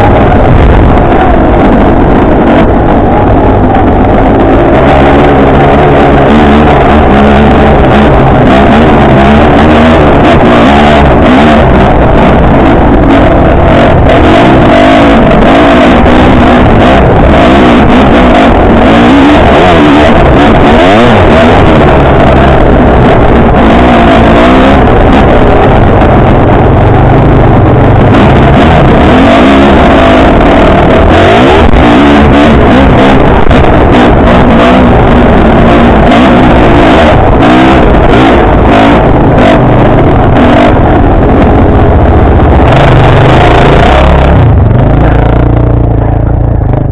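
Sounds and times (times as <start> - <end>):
motorcycle engine revving: 0.0 - 46.9.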